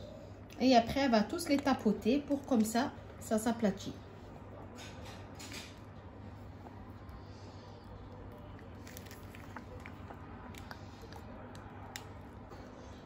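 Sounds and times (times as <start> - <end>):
steady low hum: 0.0 - 13.0
piping bag squishing: 6.4 - 12.8.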